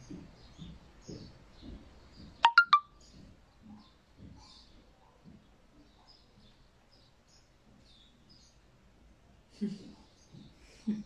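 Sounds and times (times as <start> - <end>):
three-note chime: 2.4 - 2.8.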